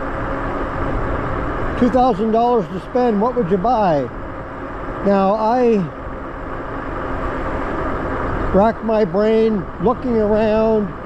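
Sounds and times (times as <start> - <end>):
faint steady hum: 0.0 - 11.0
wide tyres rolling on asphalt: 0.0 - 11.0.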